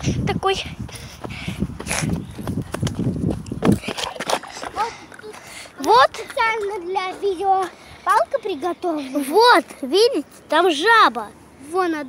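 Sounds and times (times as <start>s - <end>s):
running footsteps on sand: 0.0s - 8.3s.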